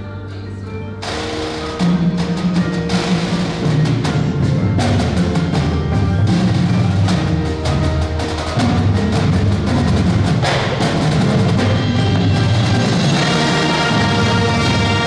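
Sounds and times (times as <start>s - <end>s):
drums and mallet percussion: 0.0s - 15.0s
marching band playing: 1.0s - 15.0s.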